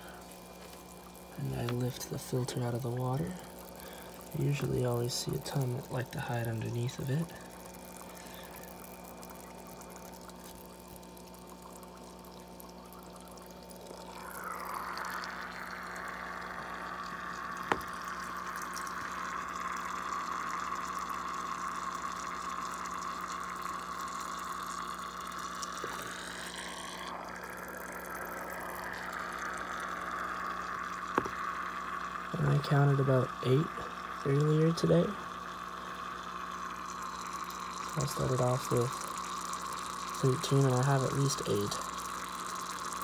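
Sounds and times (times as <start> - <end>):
low steady hum: 0.0 - 43.0
water bubbling from sponge filter: 0.0 - 43.0.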